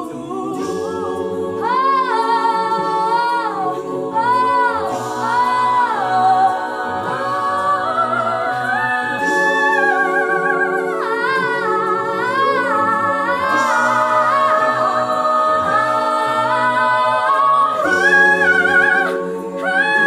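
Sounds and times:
choir holding sustained chords: 0.0s - 20.0s.

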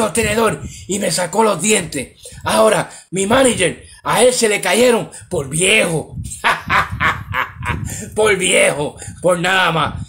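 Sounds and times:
man laughing: 6.2s - 8.2s.

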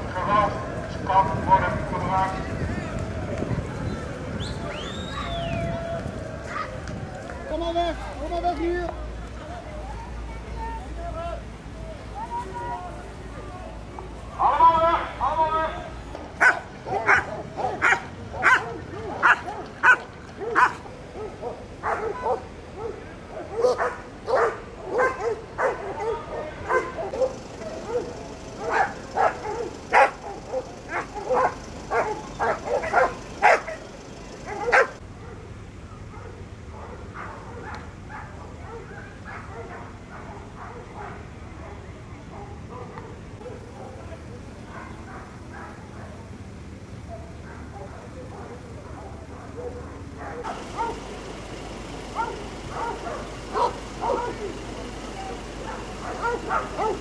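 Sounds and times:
dog barking: 16.4s - 35.5s, 36.1s - 46.4s, 47.1s - 57.0s.

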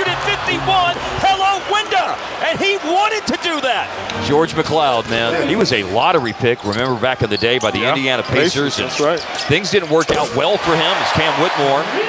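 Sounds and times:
man commentating: 0.0s - 12.0s.

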